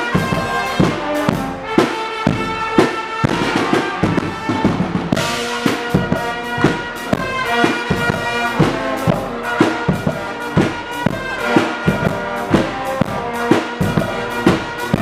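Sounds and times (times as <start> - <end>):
bass drum and cymbals: 0.0 - 15.0
brass band chords: 0.0 - 15.0.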